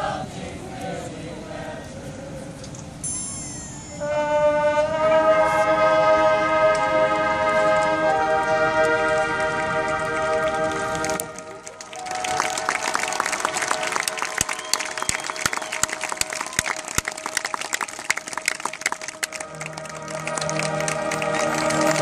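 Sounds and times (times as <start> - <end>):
marching band chord: 3.8 - 22.0
audience applause and cheering: 8.9 - 22.0.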